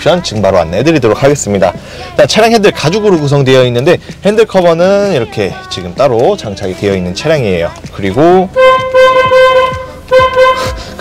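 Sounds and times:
car horn honking: 8.5 - 11.0.

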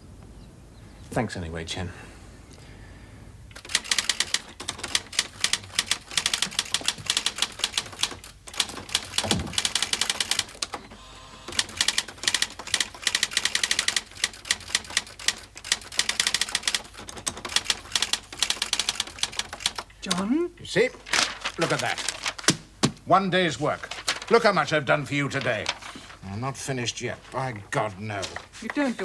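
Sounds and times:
typewriter keys striking: 3.6 - 10.8, 11.5 - 20.3, 21.1 - 22.6.

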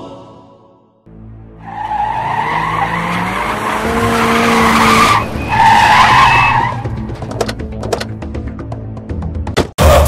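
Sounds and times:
music: 0.0 - 2.0, 5.4 - 10.0
car tyres screeching: 1.6 - 7.9.

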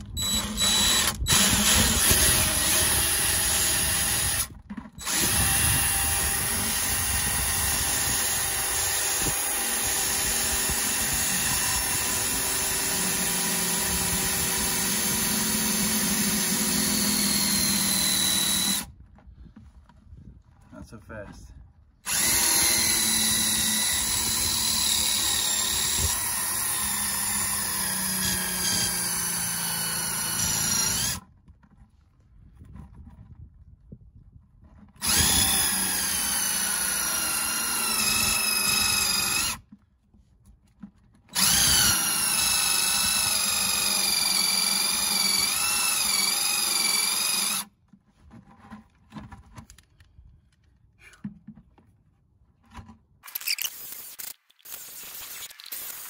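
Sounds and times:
cordless drill boring fiberglass: 0.0 - 18.9, 22.1 - 31.2, 35.0 - 39.6, 41.3 - 47.7, 53.3 - 56.0.

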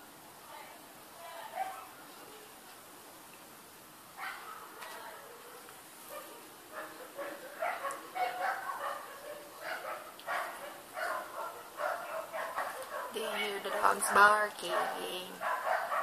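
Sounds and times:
dog barking: 1.5 - 1.9, 4.2 - 16.0.

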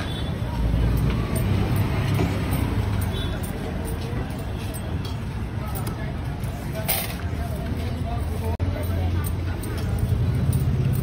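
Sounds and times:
street noise: 0.0 - 11.0
vehicle engine rumbling: 0.0 - 11.0.

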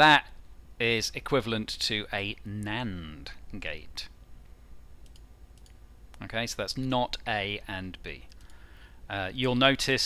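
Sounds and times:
low steady hum: 0.0 - 10.0
computer mouse clicks: 5.0 - 6.2, 8.2 - 8.6.

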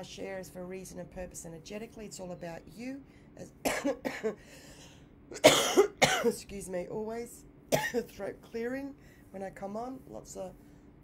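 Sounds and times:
woman coughing: 3.6 - 4.4, 5.3 - 6.4, 7.7 - 8.2.

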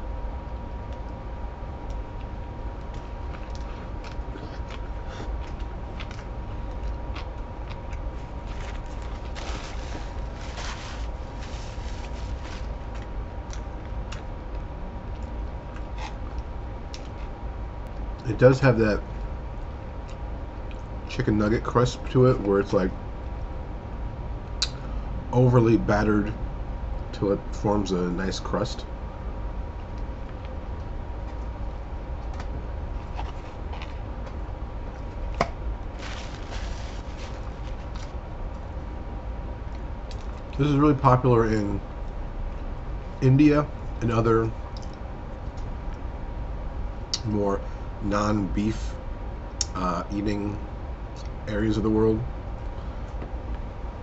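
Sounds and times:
low room hum: 0.0 - 54.0
man chewing crunchy food: 1.8 - 17.4, 30.0 - 38.6.

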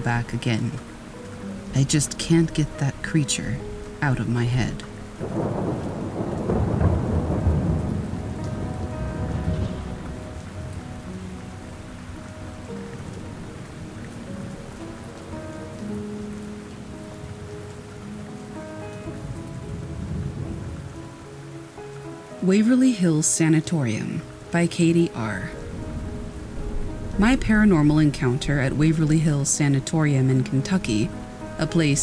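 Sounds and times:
steady rain: 0.0 - 32.0
thunder rumble: 4.1 - 21.3, 25.3 - 32.0.

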